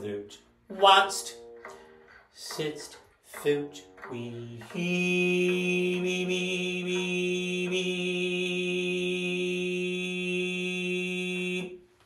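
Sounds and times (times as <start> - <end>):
man singing a low note: 2.4 - 11.8.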